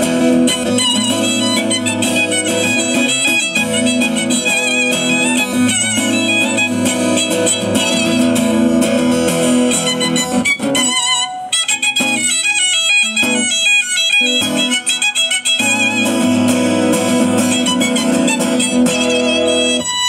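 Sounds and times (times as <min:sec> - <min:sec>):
acoustic guitar accompaniment: 0:00.0 - 0:20.0
violin melody with vibrato: 0:00.0 - 0:20.0.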